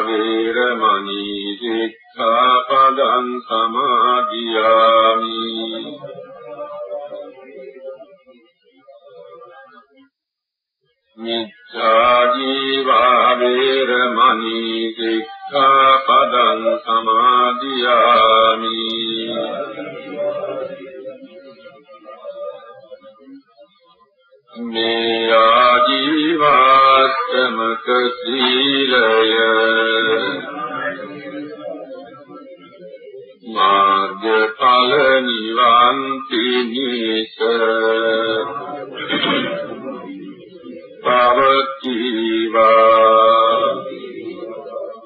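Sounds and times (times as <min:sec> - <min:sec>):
person chanting: 0:00.0 - 0:10.1, 0:11.2 - 0:23.7, 0:24.5 - 0:45.0.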